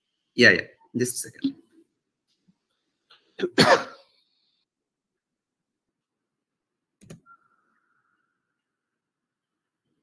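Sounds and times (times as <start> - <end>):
person coughing: 3.4 - 4.1.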